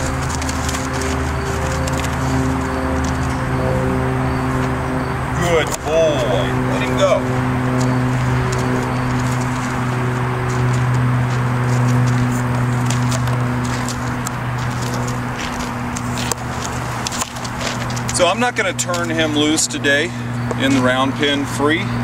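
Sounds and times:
low machine hum: 0:00.0 - 0:22.0.

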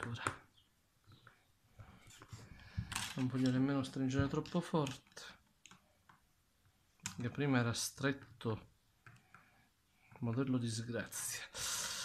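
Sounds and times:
faint clicks and taps of handling: 0:00.0 - 0:07.5, 0:08.1 - 0:10.5.

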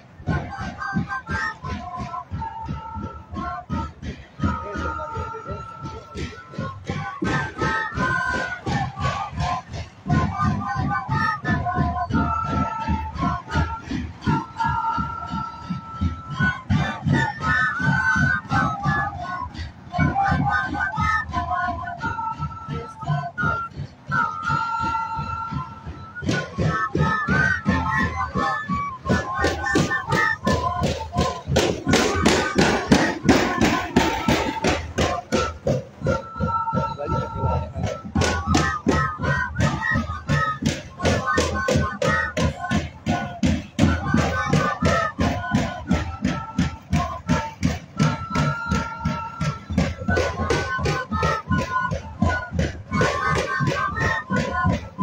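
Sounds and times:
flutes playing melody: 0:00.0 - 0:55.0.

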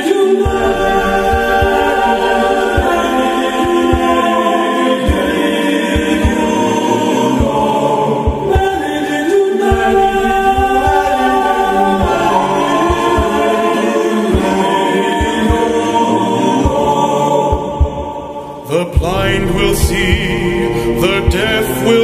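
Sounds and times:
choir singing held chords: 0:00.0 - 0:22.0
low drum thumps: 0:00.5 - 0:04.3, 0:09.7 - 0:13.5, 0:19.0 - 0:22.0.

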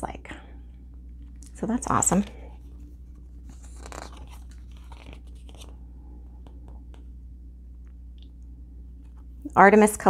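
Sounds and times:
paper pages rustling: 0:02.1 - 0:07.1.

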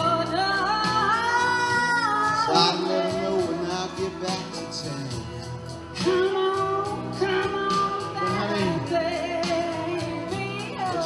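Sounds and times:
man and woman singing: 0:00.0 - 0:05.2, 0:06.0 - 0:11.0
instrumental accompaniment: 0:00.0 - 0:11.0.

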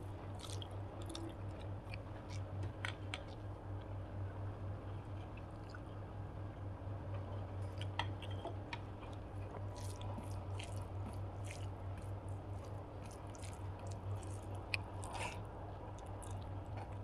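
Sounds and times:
steady low hum: 0:00.0 - 0:17.0
fingers squishing rice: 0:09.1 - 0:17.0.

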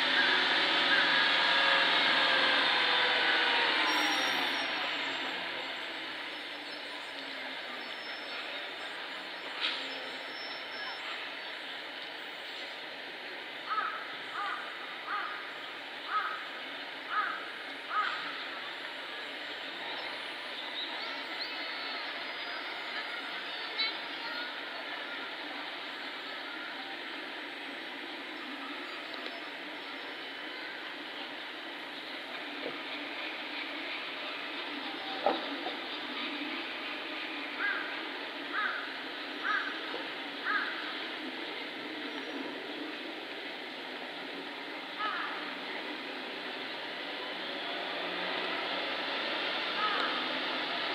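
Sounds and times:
faint distant voices: 0:00.0 - 0:50.9
outdoor background murmur: 0:00.0 - 0:50.9.

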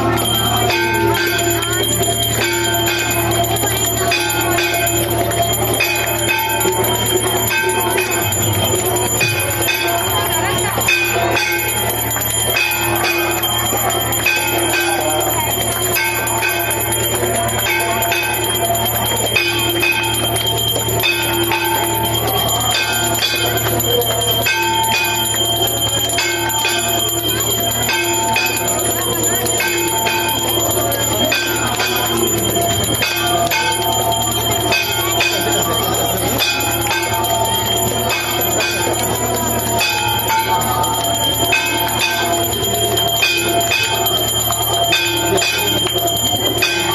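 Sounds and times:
crowd singing: 0:00.0 - 0:46.9
temple bells ringing: 0:00.0 - 0:46.9.

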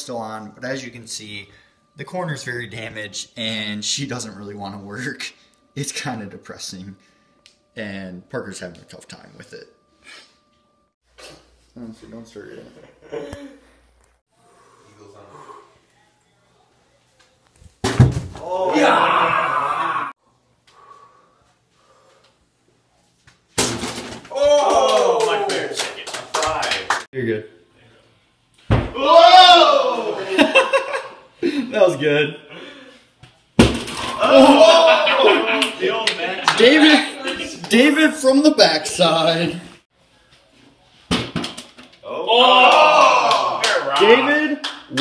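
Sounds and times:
ball hitting plastic bottles: 0:17.8 - 0:18.4, 0:23.5 - 0:24.4, 0:33.6 - 0:34.3, 0:41.1 - 0:42.0
excited shouts: 0:18.4 - 0:20.2, 0:24.3 - 0:26.8, 0:28.9 - 0:30.5, 0:34.1 - 0:38.3, 0:42.0 - 0:44.5.

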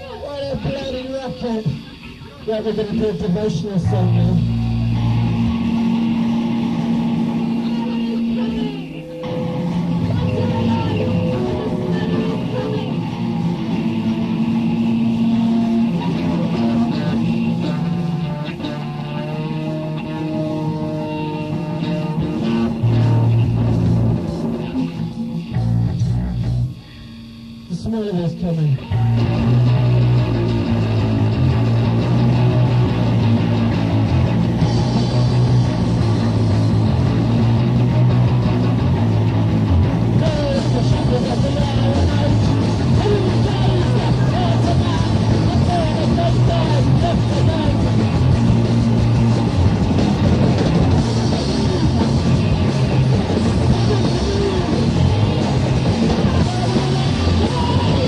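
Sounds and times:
live rock band playing: 0:00.0 - 0:27.6, 0:28.8 - 0:58.0
steady bass line: 0:00.0 - 0:58.0.

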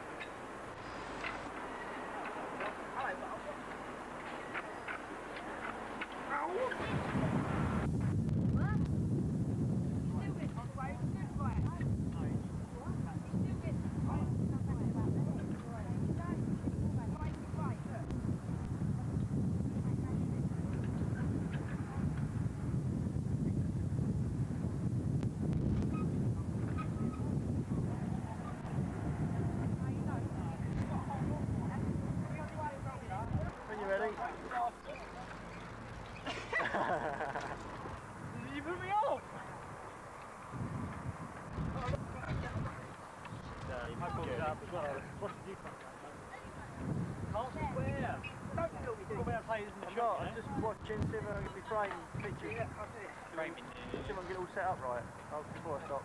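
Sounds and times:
voices calling: 0:00.0 - 0:07.5, 0:29.6 - 0:40.5, 0:41.6 - 0:56.0
wind buffeting microphone: 0:00.0 - 0:56.0.

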